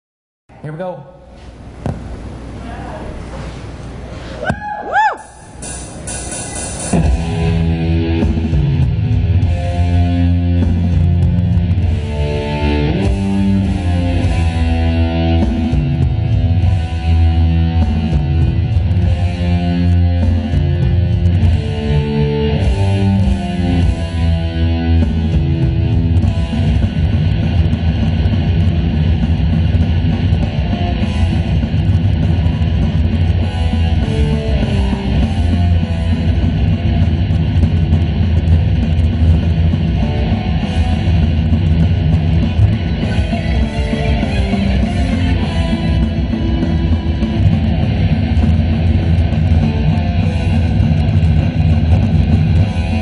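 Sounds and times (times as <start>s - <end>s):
distorted electric guitar: 5.0s - 53.0s
heavy metal music: 5.1s - 53.0s
high hiss: 5.2s - 7.0s.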